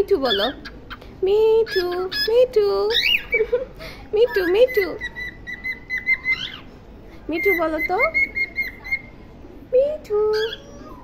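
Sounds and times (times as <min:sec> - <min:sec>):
cockatiel squeak: 0:00.2 - 0:01.0, 0:01.7 - 0:03.5, 0:04.2 - 0:06.7, 0:07.4 - 0:09.2, 0:10.3 - 0:11.0
cockatiel whistling: 0:04.3 - 0:06.7, 0:07.4 - 0:09.1.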